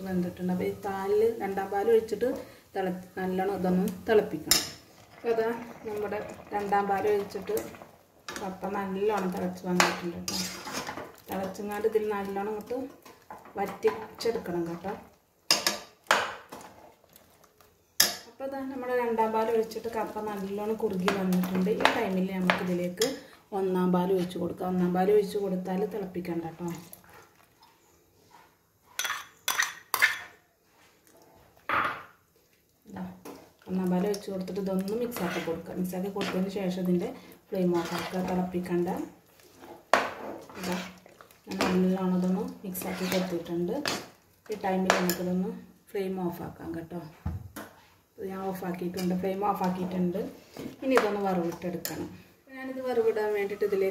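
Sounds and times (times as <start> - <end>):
metal spoon scraping cooking pot: 4.5 - 11.8, 33.2 - 36.8, 37.6 - 44.2.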